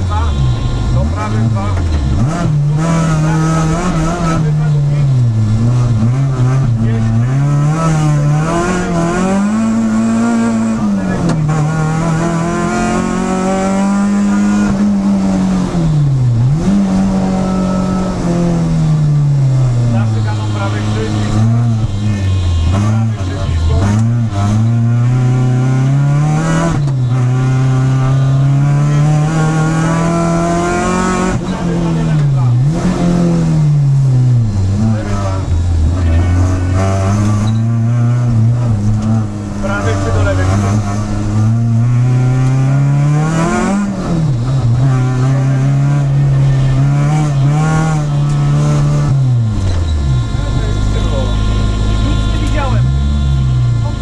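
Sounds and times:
rally car engine revving: 0.0s - 54.0s.

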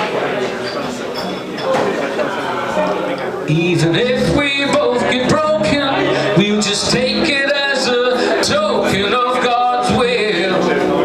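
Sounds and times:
man singing folk song: 3.5s - 11.0s
strummed guitar: 3.5s - 11.0s.

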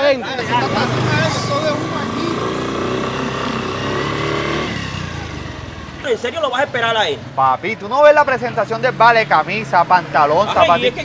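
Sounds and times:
small motorcycle accelerating: 0.2s - 6.3s.

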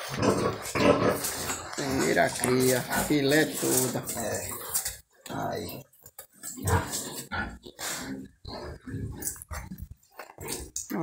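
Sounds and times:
pigs grunting: 0.0s - 11.0s.

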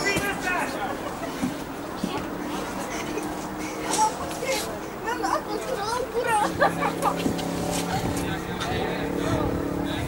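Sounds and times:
vehicle engine hum: 0.0s - 10.0s.

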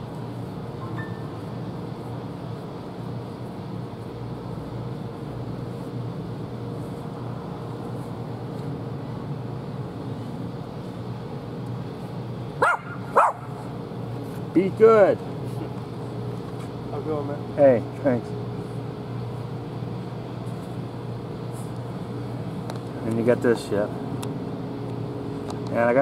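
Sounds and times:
dog barking: 12.6s - 13.5s.

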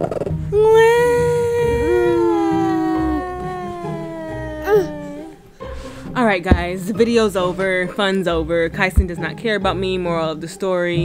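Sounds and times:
woman squealing: 0.5s - 5.4s
woman wailing: 0.6s - 5.4s.

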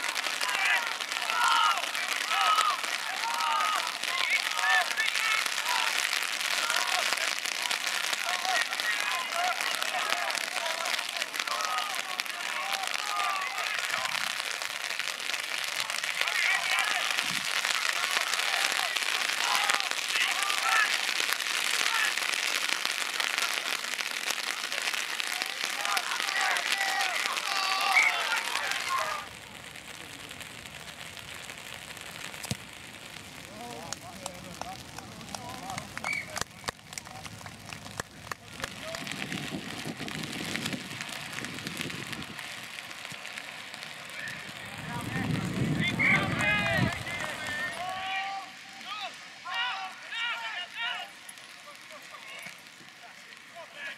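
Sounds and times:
players shouting: 0.0s - 32.4s, 33.1s - 53.9s
steady hiss: 0.0s - 53.9s
wind rumble on microphone: 38.1s - 43.2s, 44.3s - 47.5s.

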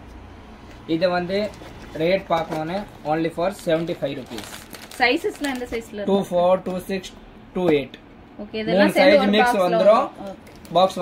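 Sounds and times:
plastic wrapping crinkling: 1.0s - 6.0s, 10.3s - 11.0s
man speaking: 8.7s - 11.0s.

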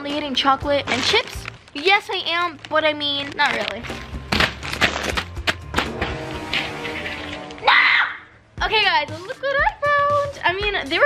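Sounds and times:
background music: 0.0s - 11.0s
crinkly packets landing on mattress: 0.9s - 1.8s, 3.2s - 6.0s.

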